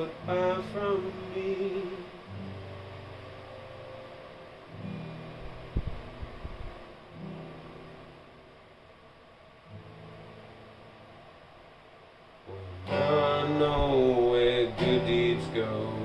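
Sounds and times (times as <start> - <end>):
person singing: 0.0 - 2.3, 12.5 - 16.0
acoustic guitar chords: 0.0 - 16.0
low thumps: 5.4 - 6.8.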